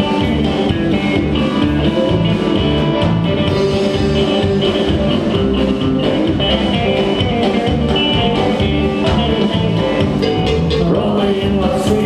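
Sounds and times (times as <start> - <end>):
drum kit beat: 0.0 - 12.0
electric bass: 0.0 - 12.0
electric guitars: 0.0 - 12.0.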